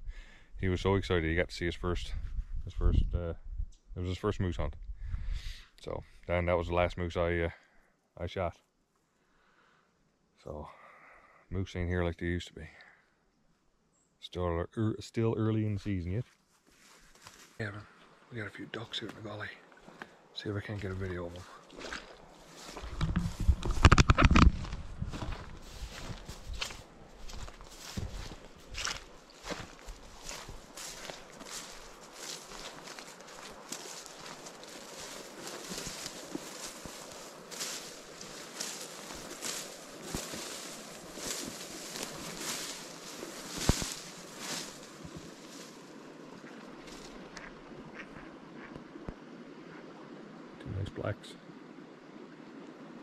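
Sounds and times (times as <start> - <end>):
footsteps through long grass: 16.2 - 18.3, 19.0 - 48.0
vegetation rustling against clothing: 16.2 - 47.4.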